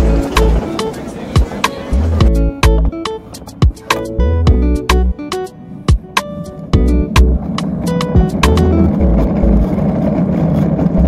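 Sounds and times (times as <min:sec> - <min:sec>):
music with heavy bass beat: 0:00.0 - 0:09.7
sharp drum hits: 0:05.9 - 0:08.7.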